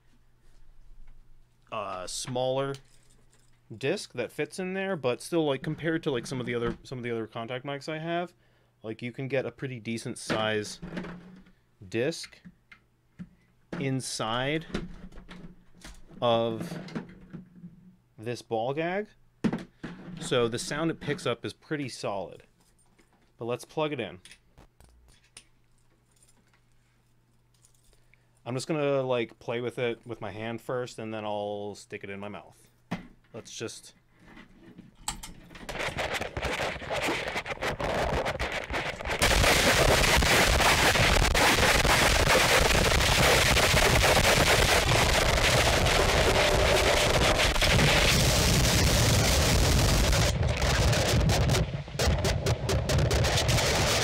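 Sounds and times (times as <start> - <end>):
distorted contact microphone crackle: 35.6 - 54.0.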